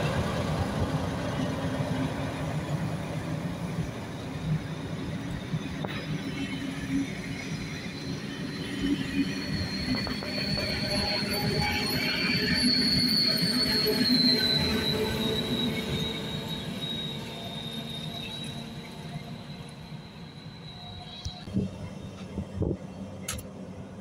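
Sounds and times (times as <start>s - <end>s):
train wheels squealing: 0.0s - 23.3s.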